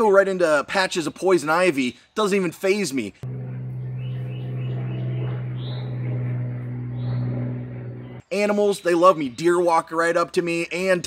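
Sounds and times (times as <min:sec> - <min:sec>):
steady low hum: 0:03.2 - 0:08.2.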